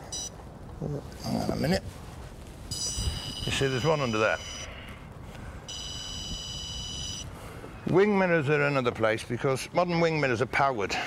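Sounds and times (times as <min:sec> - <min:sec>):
high-pitched electronic beep: 0:02.7 - 0:04.7, 0:05.7 - 0:07.3.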